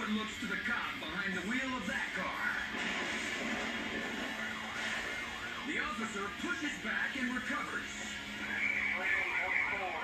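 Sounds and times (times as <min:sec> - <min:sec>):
police siren: 0:08.4 - 0:10.0.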